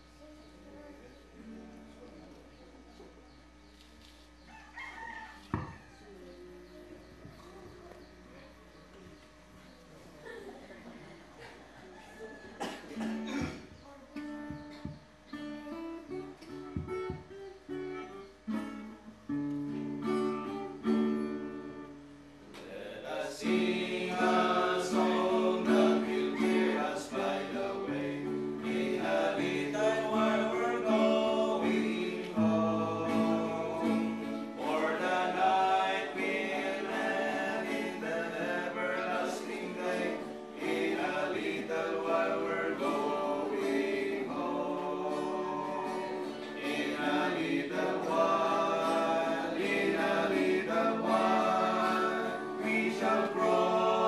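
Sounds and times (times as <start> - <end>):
acoustic guitar strumming: 13.0 - 22.4, 23.2 - 54.0
men singing a hymn: 22.6 - 54.0.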